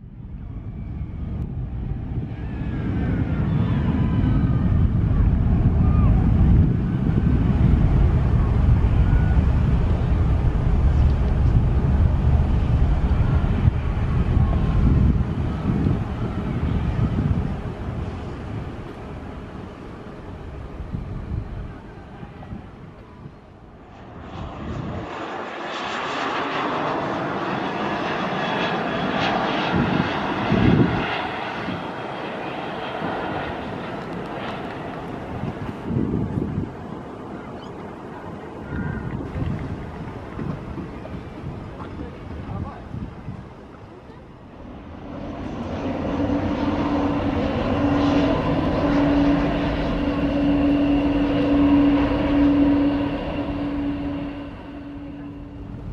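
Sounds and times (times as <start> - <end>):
jet engines rumbling: 0.0 - 55.9
hissy engine noise: 33.2 - 55.9.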